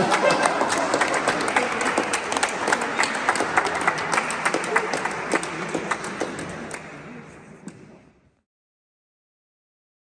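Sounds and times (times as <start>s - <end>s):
people applauding: 0.0s - 7.3s.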